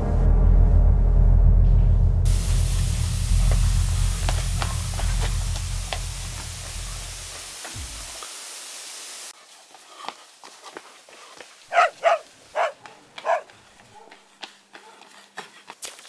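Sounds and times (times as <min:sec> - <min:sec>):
deep suspense music drone: 0:00.0 - 0:07.5.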